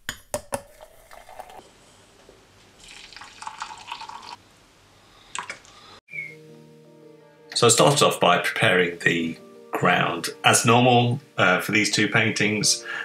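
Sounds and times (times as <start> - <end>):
hot water pouring from kettle: 0.7 - 1.6, 2.8 - 4.4
plucked-string music: 6.3 - 12.9.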